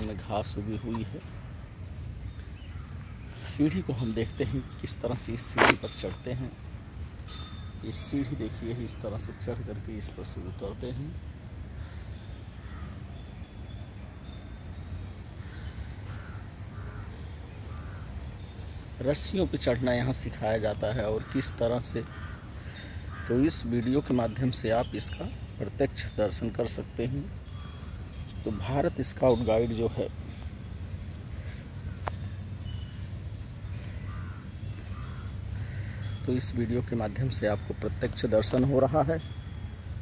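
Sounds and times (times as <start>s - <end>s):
faint bird calls: 0.0s - 40.0s
high insect drone: 0.0s - 40.0s
crow cawing in the distance: 2.3s - 3.3s, 11.7s - 13.2s, 15.3s - 18.9s, 20.7s - 24.0s, 27.4s - 28.5s, 30.3s - 36.6s
steady low rumble: 27.3s - 37.0s.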